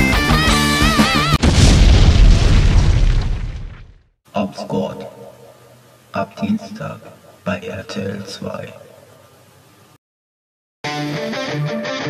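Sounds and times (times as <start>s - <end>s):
explosion boom: 1.4s - 4.1s.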